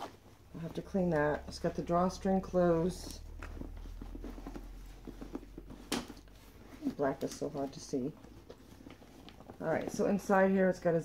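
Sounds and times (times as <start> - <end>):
backpack rustling: 0.0 - 10.7.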